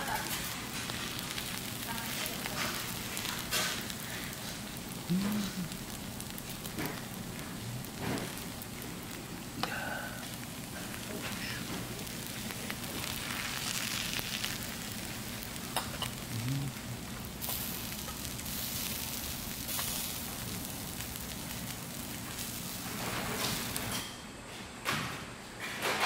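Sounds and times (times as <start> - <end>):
food sizzling on hot griddle: 0.0 - 24.2.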